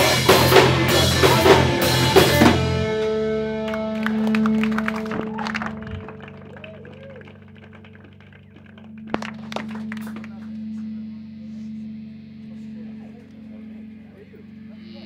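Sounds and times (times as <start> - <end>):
live band drum hits: 0.0 - 3.0
guitar notes ringing: 0.0 - 6.9, 7.5 - 15.0
low amplifier tone: 0.0 - 15.0.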